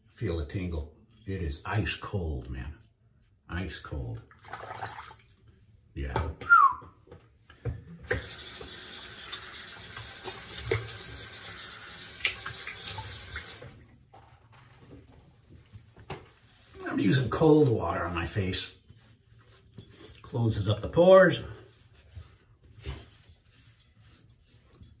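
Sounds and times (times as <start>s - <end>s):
tap water running into sink: 4.3s - 5.2s, 8.0s - 13.8s
water splashing: 4.3s - 5.3s.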